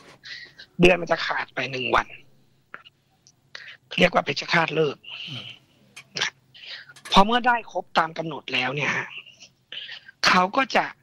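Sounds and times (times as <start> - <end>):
person talking: 0.3 - 2.9, 3.6 - 11.0.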